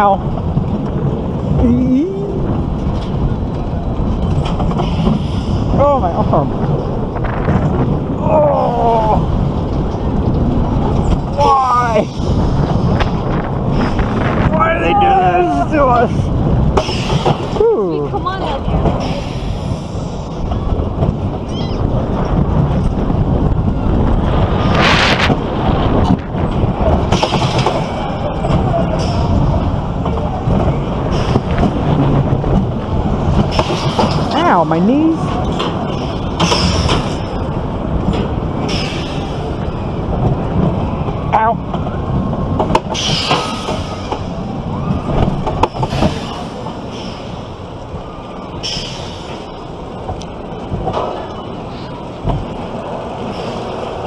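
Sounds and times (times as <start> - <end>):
roller coaster track rumble: 0.0 - 54.0
wind rushing: 0.0 - 54.0.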